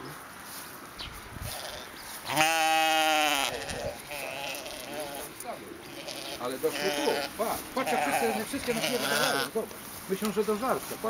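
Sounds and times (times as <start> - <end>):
sheep bleating: 1.5 - 9.6.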